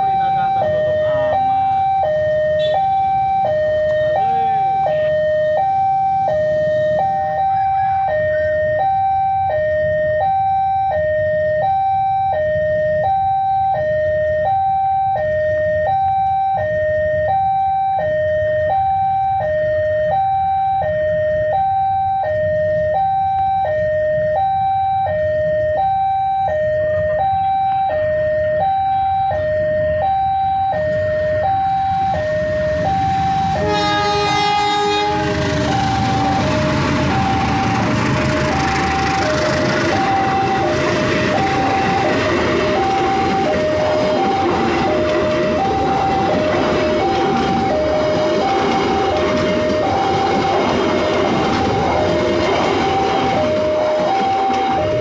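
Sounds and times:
level crossing warning bell: 0.0 - 55.0
train wheels rumbling on rails: 22.2 - 55.0
locomotive horn blast: 33.5 - 41.4.

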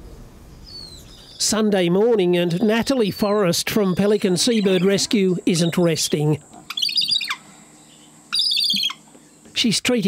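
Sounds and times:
bird chirping: 0.5 - 1.6, 2.5 - 9.5.

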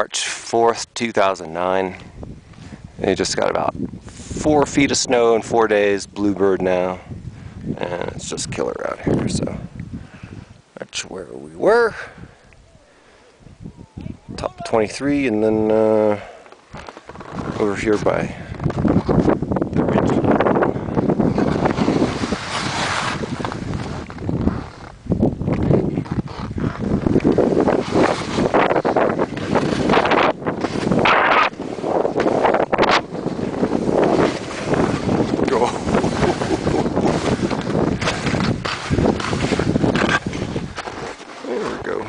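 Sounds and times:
wind buffeting microphone: 1.7 - 42.0.

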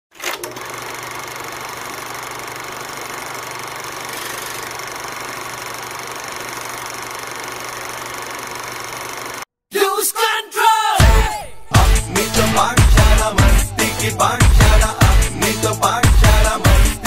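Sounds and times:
film projector whirring and rattling: 0.1 - 9.5.

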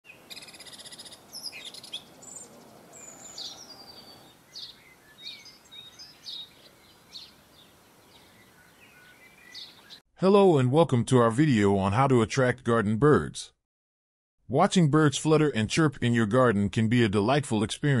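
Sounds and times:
birds singing and chirping: 0.1 - 10.0.

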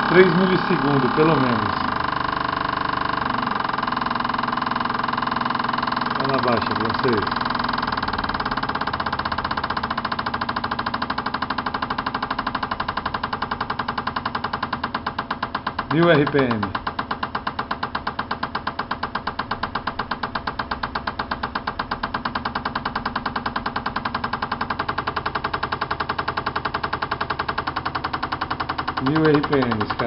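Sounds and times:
fuel injectors clicking: 0.0 - 30.0
test bench hum: 0.0 - 30.0.

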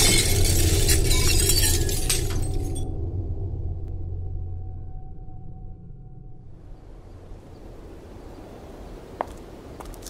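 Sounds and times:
glass and debris shattering: 0.0 - 2.9
low rumble: 0.0 - 8.3.

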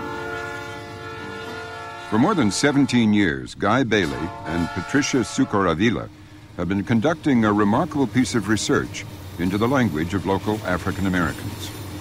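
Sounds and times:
train horn: 0.0 - 3.3, 4.0 - 5.9
train passing on tracks: 0.0 - 12.0.

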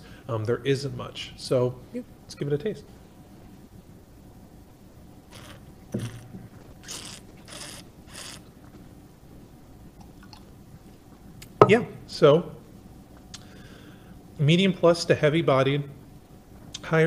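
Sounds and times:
short airy breaths: 13.4 - 14.2.

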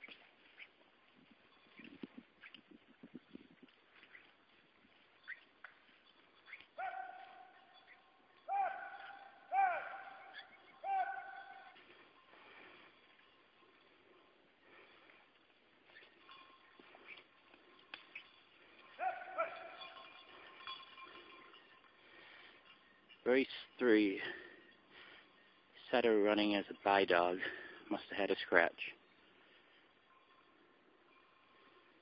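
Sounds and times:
long held calls: 6.2 - 15.2.

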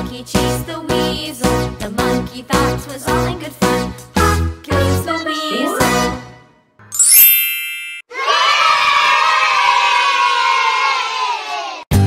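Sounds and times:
bright chime with rising sparkle: 6.9 - 8.1
children cheering: 8.1 - 11.9.

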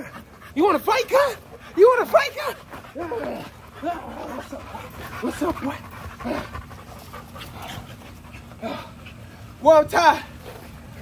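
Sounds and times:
dog panting: 0.0 - 11.0.

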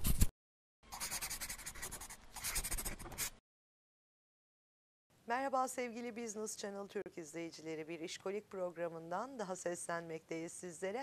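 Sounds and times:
pen scratching on paper: 0.9 - 3.4.

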